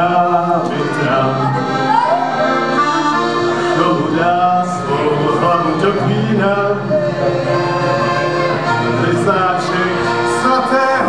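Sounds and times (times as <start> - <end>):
accordion playing a tune: 0.0 - 11.0.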